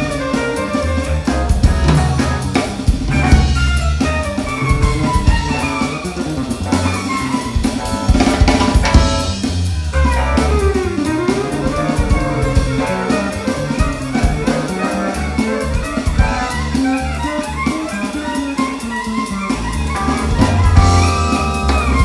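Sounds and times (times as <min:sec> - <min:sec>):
bowed violin melody: 0:00.0 - 0:08.1, 0:10.0 - 0:22.0
drum kit with cymbals: 0:00.0 - 0:22.0
electric bass line: 0:00.0 - 0:22.0
stage keyboard: 0:00.0 - 0:22.0.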